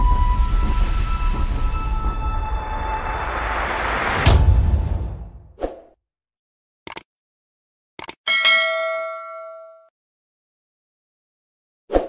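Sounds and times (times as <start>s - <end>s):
notification bell ding: 8.3s - 9.9s.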